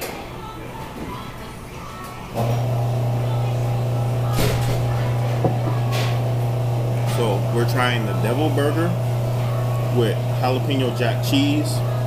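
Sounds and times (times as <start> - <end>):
loud steady low hum: 2.4 - 12.0.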